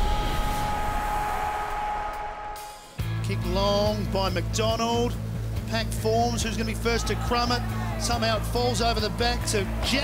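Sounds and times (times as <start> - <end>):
high synth tones: 0.0 - 2.9
noise wash and low rumble: 0.0 - 9.4.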